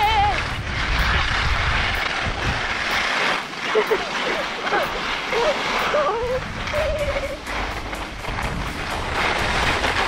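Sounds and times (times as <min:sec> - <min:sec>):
skis hissing over snow: 0:00.0 - 0:10.0
wind buffeting microphone: 0:00.0 - 0:10.0.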